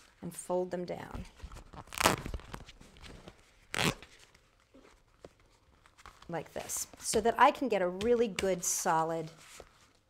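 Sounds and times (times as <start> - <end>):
duct tape crinkling: 1.6 - 6.3.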